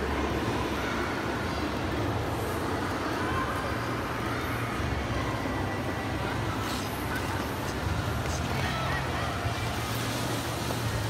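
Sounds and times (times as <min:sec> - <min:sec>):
crowd noise: 0:00.0 - 0:11.0
skating noise: 0:02.6 - 0:11.0.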